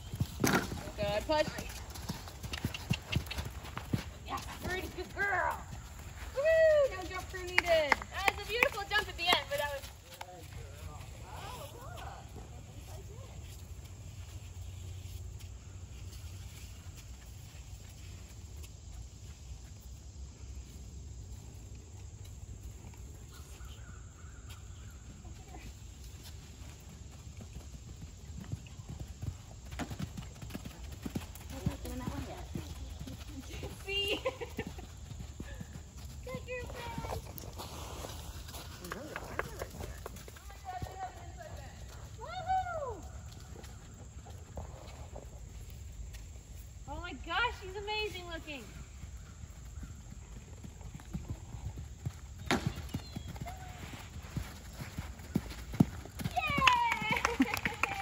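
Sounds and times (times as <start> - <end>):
hoofbeats on sand: 28.3 - 42.5.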